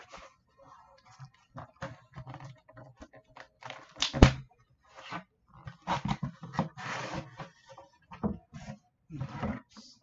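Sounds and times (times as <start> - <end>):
cardboard scraping: 4.8 - 9.6.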